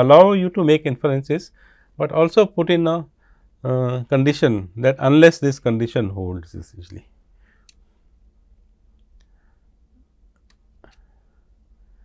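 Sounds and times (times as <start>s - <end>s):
faint clicks: 7.6s - 7.9s, 8.9s - 9.4s, 10.3s - 11.1s.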